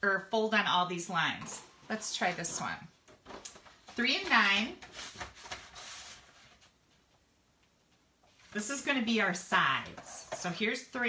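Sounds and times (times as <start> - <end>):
paper rustling and sliding: 3.5 - 6.8.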